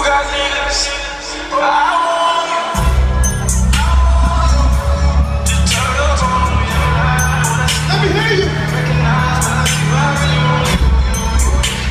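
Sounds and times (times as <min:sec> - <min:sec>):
man singing: 0:00.0 - 0:11.9
heavy bass beat: 0:02.8 - 0:11.9.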